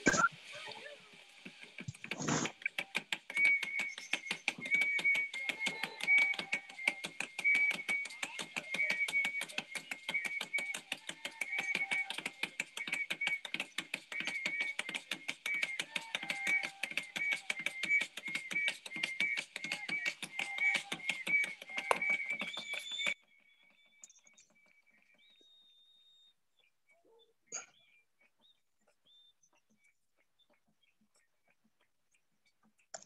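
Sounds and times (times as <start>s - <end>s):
fast rhythmic clicking: 1.2s - 25.3s, 27.7s - 33.0s.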